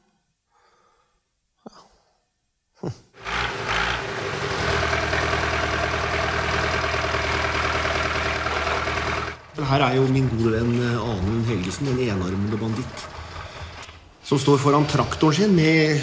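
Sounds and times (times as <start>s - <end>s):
tractor diesel engine idling: 3.2s - 15.8s.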